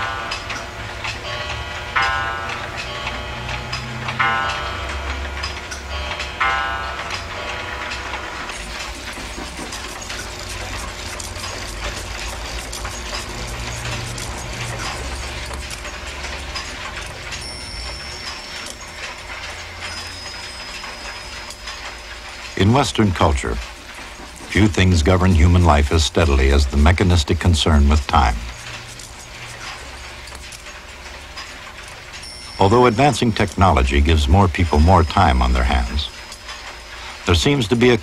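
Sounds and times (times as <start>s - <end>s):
clock movements whirring: 0.0s - 38.0s
mechanical clocks ticking: 0.0s - 38.0s
bell striking: 17.3s - 21.7s, 32.2s - 33.4s.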